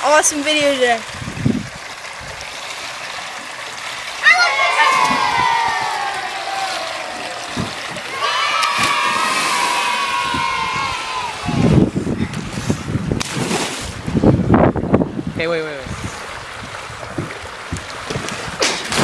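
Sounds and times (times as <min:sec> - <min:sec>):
child yelling: 0:04.2 - 0:07.4, 0:08.0 - 0:11.7.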